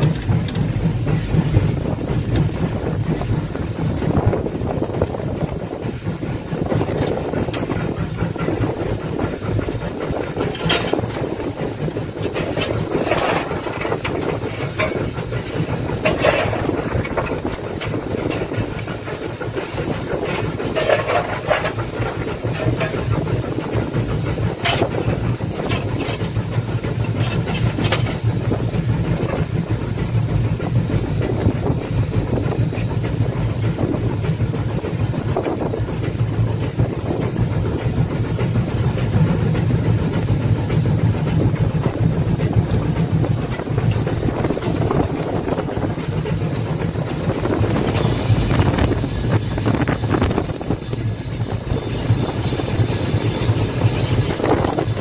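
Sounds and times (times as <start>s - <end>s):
steam locomotive running: 0.0s - 55.0s
wheels clicking over rails: 0.0s - 55.0s.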